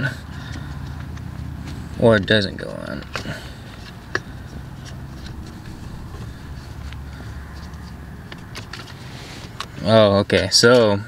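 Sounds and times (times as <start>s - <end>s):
low steady hum: 0.0s - 10.2s.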